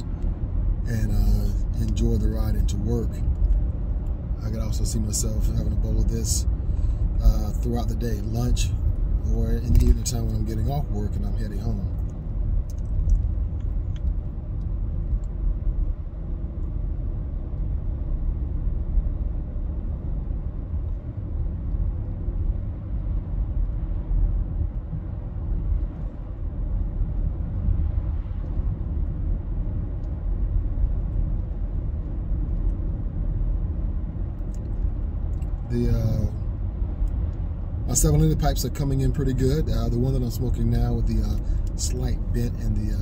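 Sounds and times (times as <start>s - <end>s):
car road rumble: 0.0s - 43.0s.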